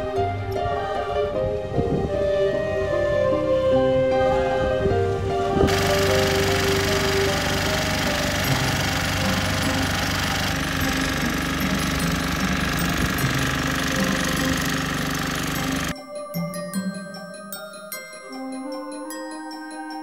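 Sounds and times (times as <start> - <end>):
powered breaker hammering: 5.7 - 15.9.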